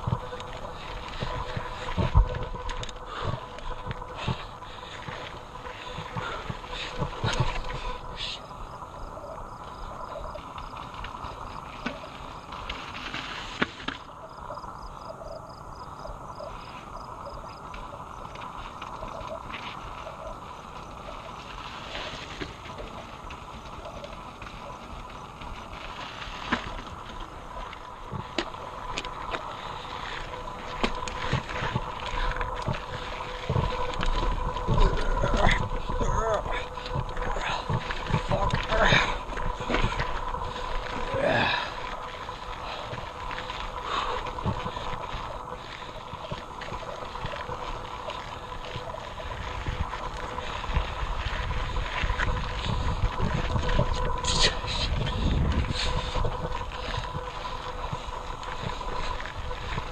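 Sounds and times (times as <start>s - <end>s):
bike knocking and rattling over rocks: 0.0s - 59.9s
wind and tyre noise: 0.0s - 59.9s.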